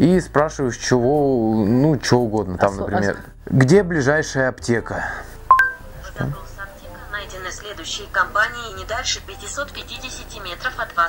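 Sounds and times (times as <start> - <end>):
two-note electronic chime: 5.5 - 5.8.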